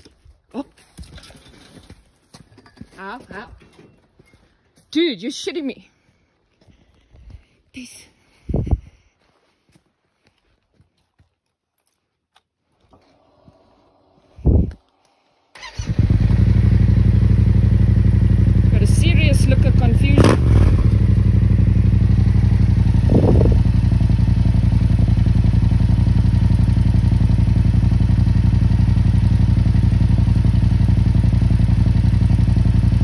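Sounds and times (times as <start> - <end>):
motorcycle engine starting and idling: 15.5 - 33.0.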